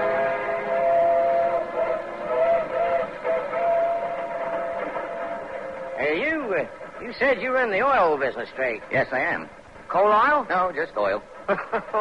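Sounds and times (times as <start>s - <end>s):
steam locomotive whistle: 0.0s - 6.8s.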